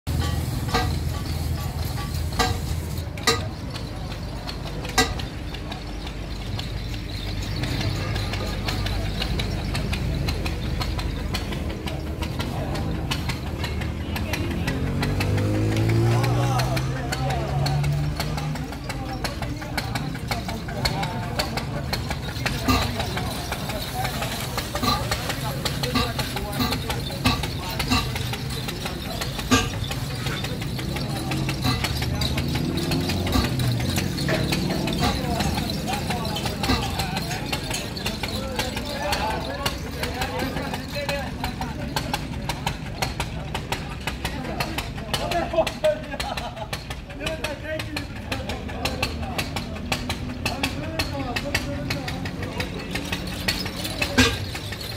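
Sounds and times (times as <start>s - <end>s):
truck engine idling: 0.0s - 54.9s
people talking: 0.1s - 54.9s.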